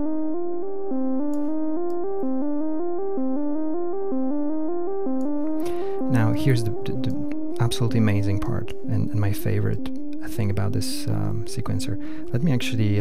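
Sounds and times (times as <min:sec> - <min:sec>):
synth sequence looping melody: 0:00.0 - 0:13.0.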